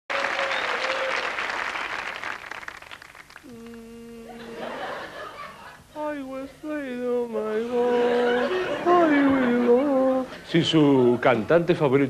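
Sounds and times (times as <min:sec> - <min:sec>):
audience applauding: 0:00.1 - 0:03.5.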